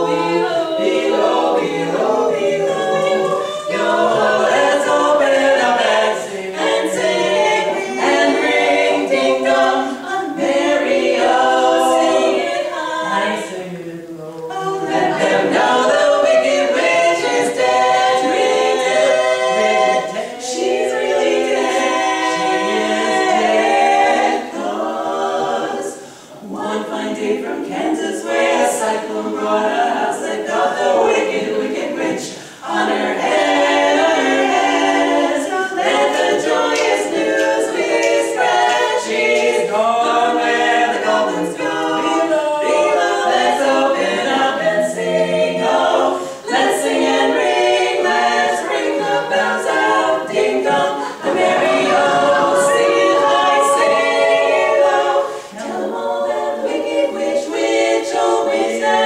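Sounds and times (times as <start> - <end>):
women singing a cappella harmony: 0.0 - 59.0.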